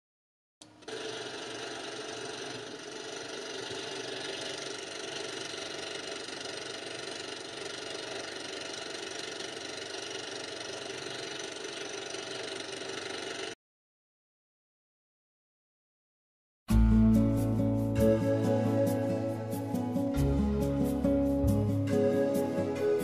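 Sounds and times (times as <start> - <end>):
film projector whirring: 0.6 - 13.6.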